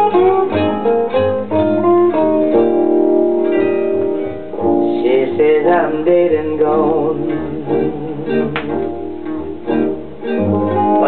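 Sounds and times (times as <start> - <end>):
blues guitar playing: 0.0 - 11.0
person singing: 4.6 - 8.8.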